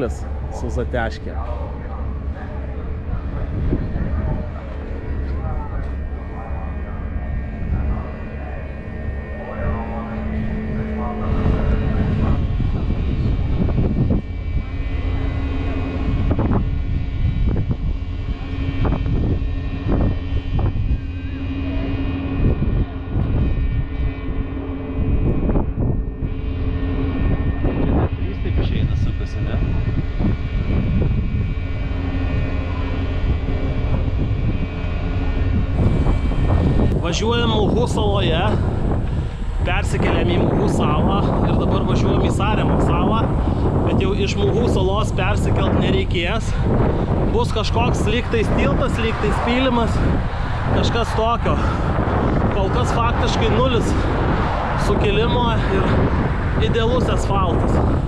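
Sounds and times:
ferry engines droning: 0.0s - 58.0s
indistinct voices: 0.0s - 58.0s
wind gusting on microphone: 0.0s - 58.0s.

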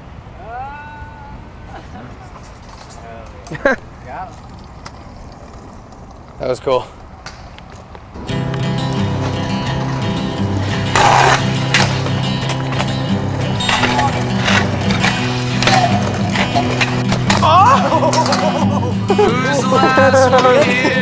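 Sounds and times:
scooter wheels rolling on concrete: 1.9s - 21.0s
music: 8.2s - 21.0s
scooter scrape or impact: 9.1s - 18.5s.

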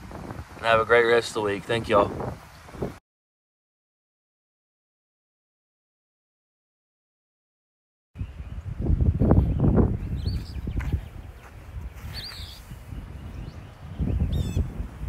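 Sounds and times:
wind buffeting microphone: 0.0s - 3.0s, 8.2s - 15.0s
birds chirping: 8.2s - 15.0s.

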